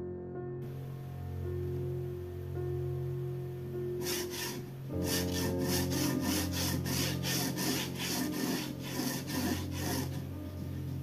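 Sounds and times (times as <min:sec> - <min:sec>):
soft background music: 0:00.0 - 0:11.0
pencil scratching on paper: 0:04.0 - 0:10.3.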